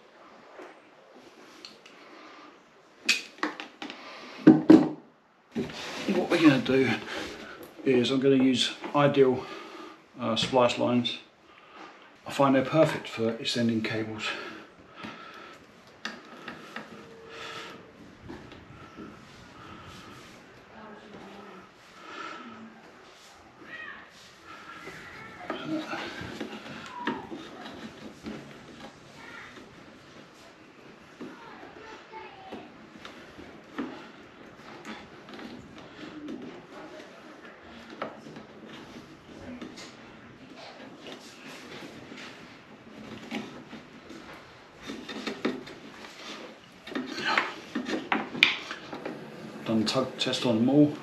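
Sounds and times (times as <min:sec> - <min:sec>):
hands rustling cables: 0:14.4 - 0:51.0.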